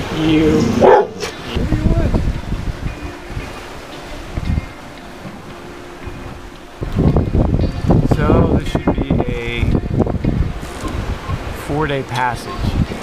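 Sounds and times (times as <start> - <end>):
faint music: 0.0 - 13.0
wind buffeting microphone: 0.0 - 13.0.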